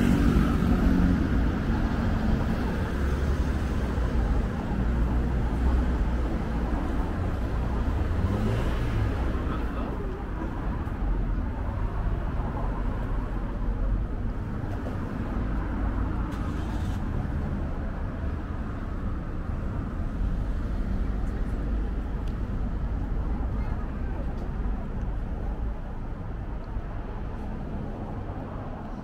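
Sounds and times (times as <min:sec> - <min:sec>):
car traffic rumble: 0:00.0 - 0:29.0.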